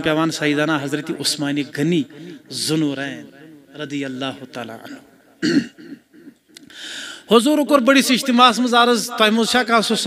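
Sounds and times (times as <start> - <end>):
man clearing his throat: 4.9 - 6.4.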